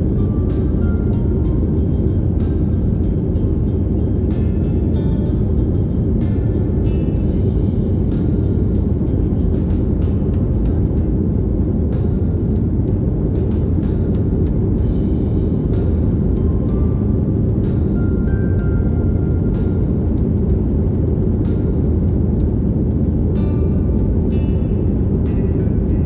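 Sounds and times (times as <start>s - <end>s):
airliner engine rumble in cabin: 0.0s - 26.0s.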